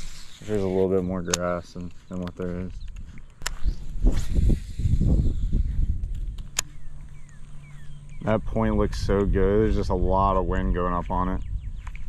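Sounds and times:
steady low hum: 0.0 - 12.0
wind buffeting microphone: 0.0 - 12.0
sharp click: 1.2 - 4.4, 6.0 - 7.4
fishing rod swish: 3.4 - 5.1.

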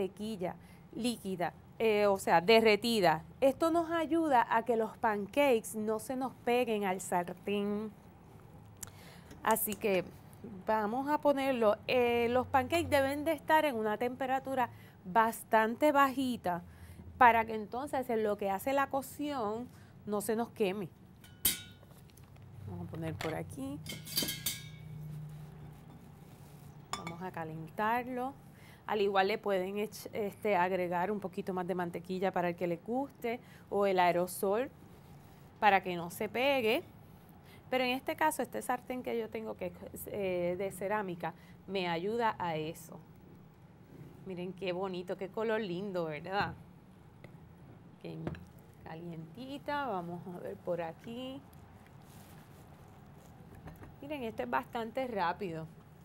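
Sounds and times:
metal utensils clinking: 21.2 - 21.8, 23.2 - 24.9.

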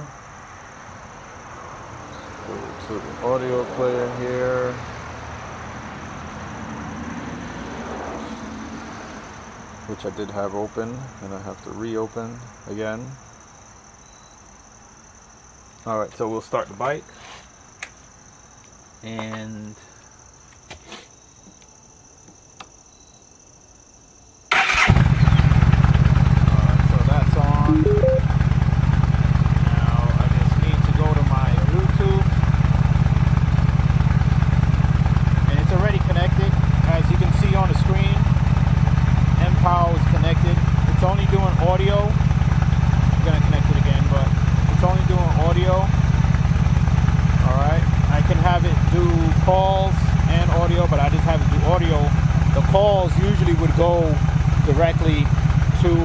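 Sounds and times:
motorcycle engine starting and idling: 24.5 - 56.0.

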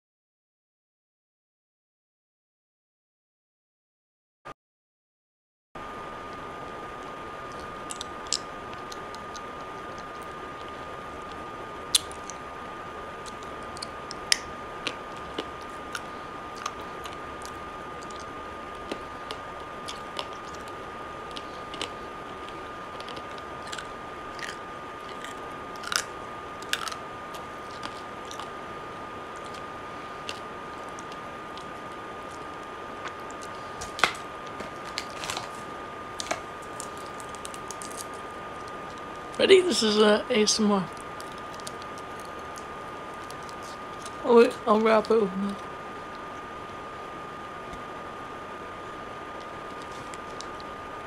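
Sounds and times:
faint high whine: 5.8 - 51.0
chewing clicks and crunches: 7.5 - 12.4, 13.2 - 28.6, 29.4 - 35.6, 36.2 - 39.4, 40.9 - 44.2, 49.4 - 50.8.

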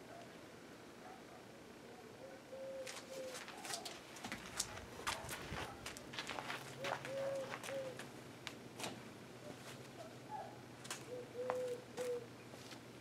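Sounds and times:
dove cooing: 1.8 - 4.0, 5.2 - 8.1, 9.4 - 12.4.

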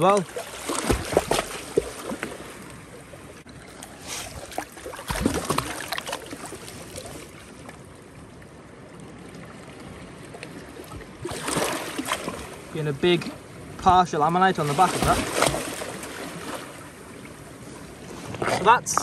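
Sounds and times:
shallow water trickling and lapping: 0.0 - 19.0
water splashes: 0.0 - 19.0.

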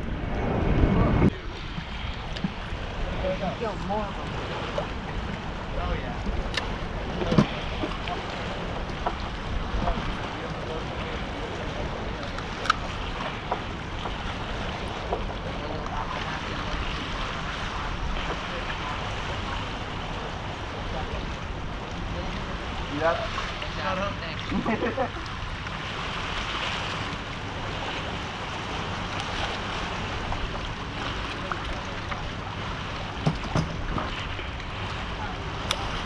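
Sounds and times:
wind buffeting microphone: 0.0 - 23.8
sea water: 0.0 - 36.0.

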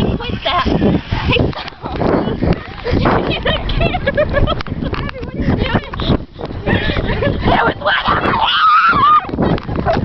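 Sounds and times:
microphone handling noise: 0.0 - 8.4
girls laughing and shrieking: 0.0 - 10.0
rumbling wind: 0.0 - 10.0.

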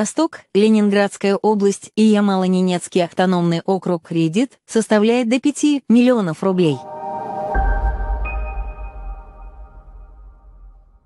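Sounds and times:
electronic ringing chord: 6.8 - 10.8
low rumble: 6.8 - 11.0.

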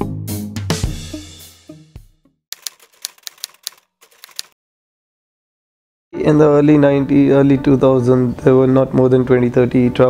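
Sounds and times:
typewriter key clicks: 2.6 - 4.6.

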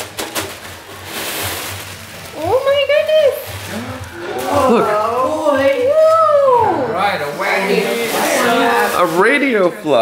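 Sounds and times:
wrapping paper rustling and tearing: 0.0 - 6.2, 7.0 - 10.0.

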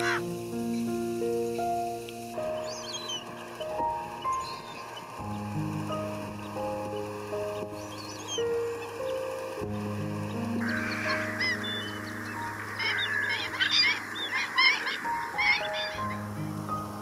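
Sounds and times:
flock of birds calling: 0.0 - 0.8, 2.4 - 17.0
soft background music: 0.0 - 17.0.

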